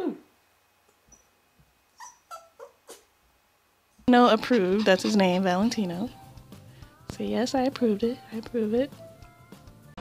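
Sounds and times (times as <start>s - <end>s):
small dog yipping: 2.0s - 3.1s.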